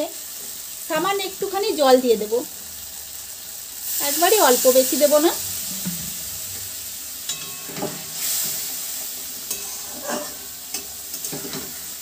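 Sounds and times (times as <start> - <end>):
gravy sizzling and bubbling in pan: 0.0 - 12.0
spatula scraping pan: 9.4 - 11.9.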